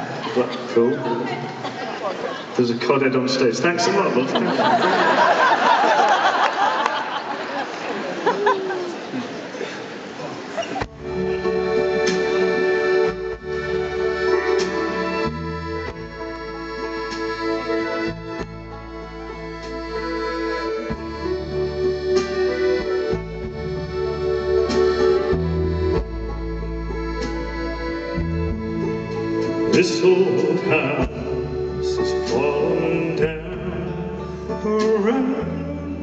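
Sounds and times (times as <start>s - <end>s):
live band playing slow ballad: 6.7s - 36.0s
person singing: 26.5s - 36.0s.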